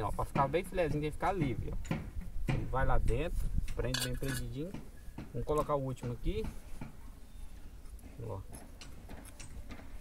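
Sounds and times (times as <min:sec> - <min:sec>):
steel pin clicking and scraping: 0:03.0 - 0:04.9.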